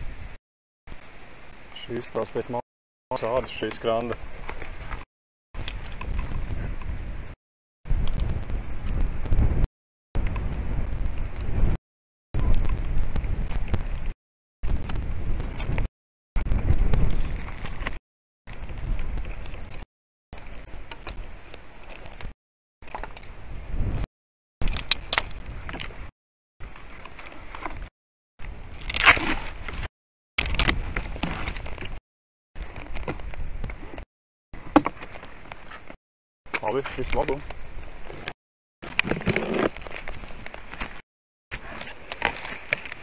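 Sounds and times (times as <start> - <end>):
wind rumbling on microphone: 0.0 - 2.2, 5.6 - 11.8, 12.4 - 22.3, 22.9 - 32.0, 32.6 - 34.0
crackling scraping handling noise: 28.7 - 32.0, 32.6 - 43.0
branches rustling and knocking: 38.8 - 43.0.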